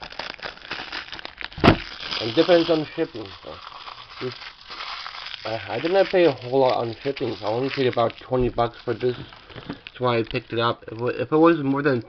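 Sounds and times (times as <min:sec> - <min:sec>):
box set crinkling and rustling: 0:00.0 - 0:12.0
case thumping down: 0:01.6 - 0:01.8.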